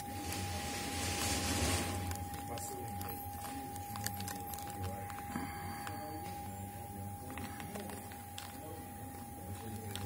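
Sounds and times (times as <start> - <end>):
steady low hum: 0.0 - 10.0
package handling noise: 1.1 - 6.6, 7.2 - 10.0.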